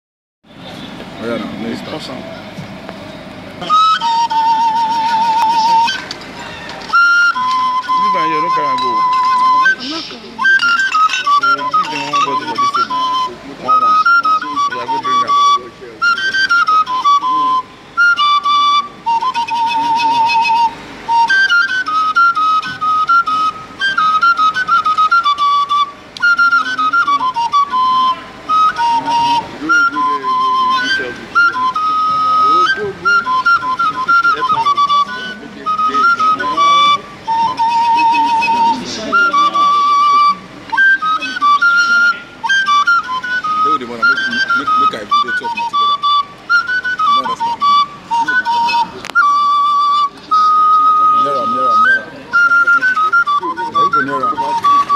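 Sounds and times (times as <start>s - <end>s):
wooden flute melody: 0.4s - 54.9s.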